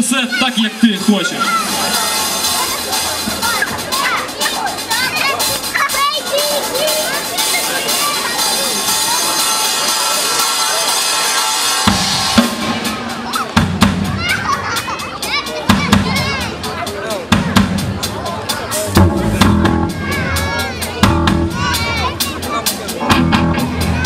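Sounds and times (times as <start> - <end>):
crowd voices: 0.0 - 24.0
live rock band playing: 1.3 - 24.0
drum hits: 11.9 - 14.6, 17.3 - 22.4.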